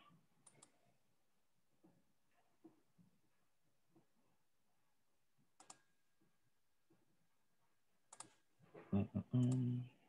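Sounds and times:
person murmuring: 8.9s - 10.0s.

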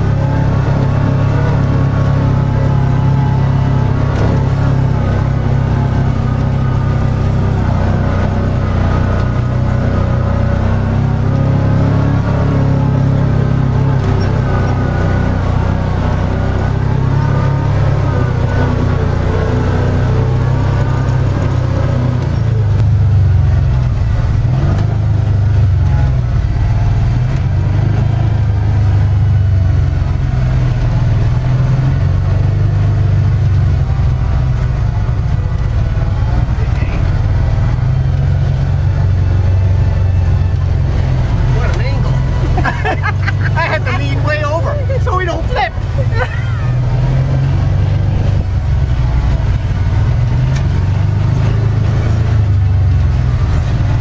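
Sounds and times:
vehicle engine droning: 0.0s - 54.0s.

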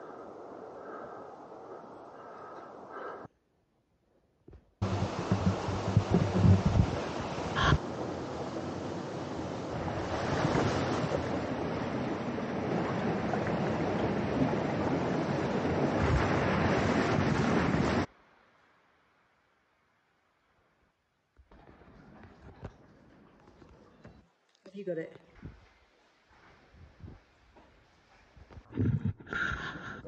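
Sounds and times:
water rushing over rocks: 4.8s - 18.1s
wind buffeting microphone: 4.8s - 18.1s.

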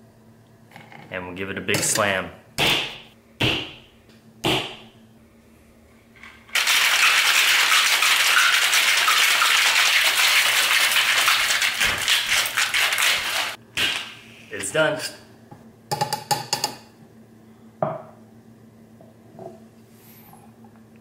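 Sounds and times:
ice rattling in shaker: 6.5s - 13.6s
hand slapping cocktail shaker: 6.5s - 14.2s.

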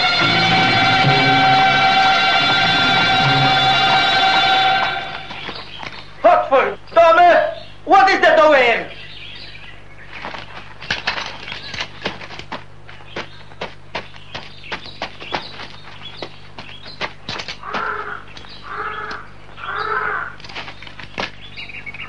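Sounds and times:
horse hooves clip-clopping: 10.1s - 19.2s
crow cawing: 17.6s - 20.4s.

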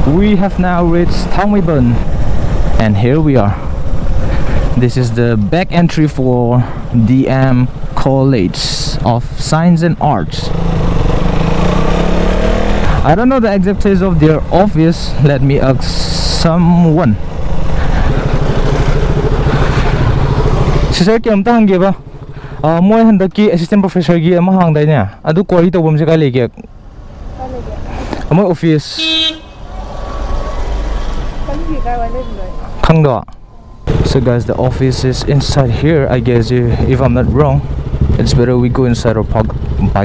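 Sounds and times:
wind and road noise: 0.0s - 40.0s
motorcycle engine running: 6.6s - 24.3s, 33.9s - 40.0s
vehicle horn toot: 29.0s - 29.7s.

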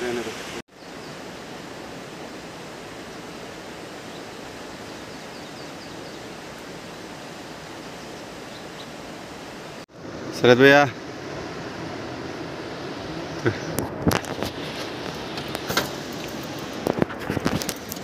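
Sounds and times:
river water rushing: 0.0s - 18.0s.

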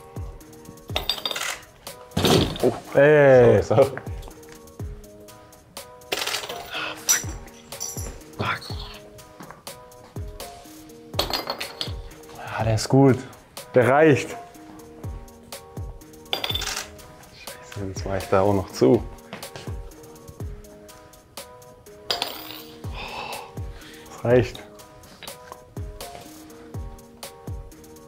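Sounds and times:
background music: 0.0s - 28.0s
glass bottle clinking on table: 11.2s - 12.0s, 16.3s - 16.8s.

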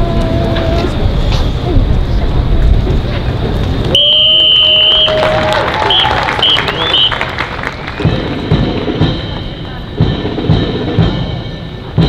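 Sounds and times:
crowd and street noise: 0.0s - 12.0s
whistle blasts: 4.0s - 8.2s.

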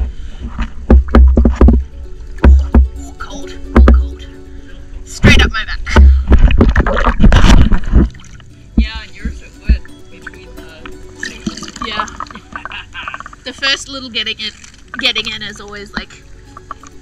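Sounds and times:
heavy low thuds on housing: 0.8s - 3.0s
water splashing against camera: 5.2s - 17.0s.

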